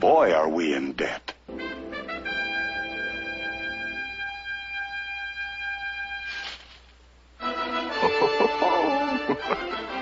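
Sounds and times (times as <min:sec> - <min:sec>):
trumpet holding high note: 0:01.5 - 0:06.4.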